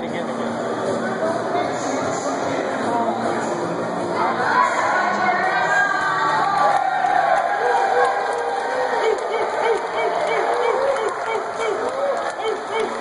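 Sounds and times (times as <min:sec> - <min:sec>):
crowd cheering and shouting: 0:04.2 - 0:13.0.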